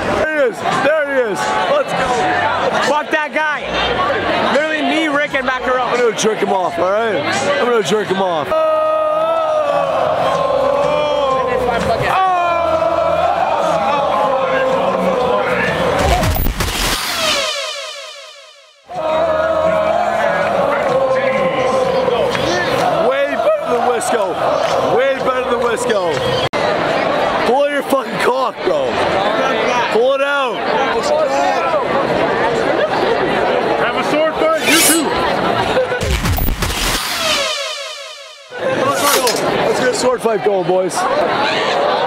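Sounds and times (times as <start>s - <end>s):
stadium crowd singing and shouting: 0.0s - 16.5s, 17.1s - 36.5s
falling sweep sound effect: 16.4s - 18.9s, 34.6s - 35.2s, 36.4s - 39.6s.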